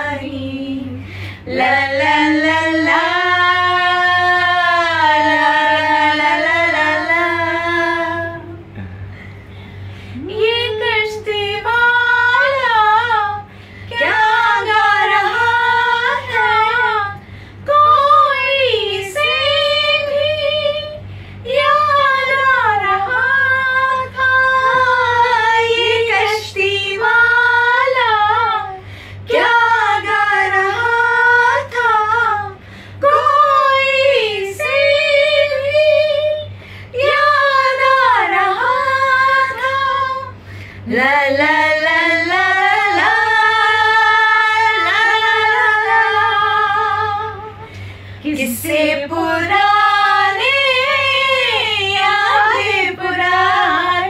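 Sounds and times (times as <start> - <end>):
woman singing unaccompanied: 0.0 - 8.6, 10.2 - 54.0
singer breathing: 1.0 - 1.5, 8.8 - 10.2, 13.5 - 13.9, 17.2 - 17.6, 21.0 - 21.4, 28.8 - 29.2, 32.6 - 33.0, 40.4 - 40.9, 47.6 - 48.2.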